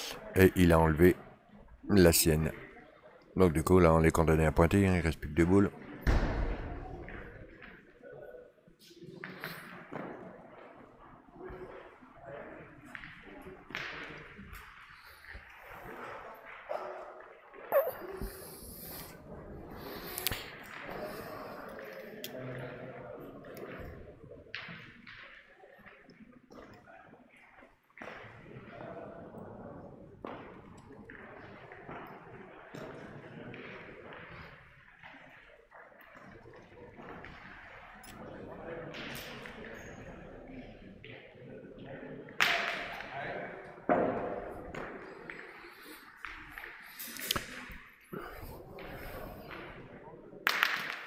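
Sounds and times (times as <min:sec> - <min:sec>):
indistinct voices echoing: 0:00.0 - 0:02.8, 0:09.1 - 0:24.9, 0:41.6 - 0:51.0.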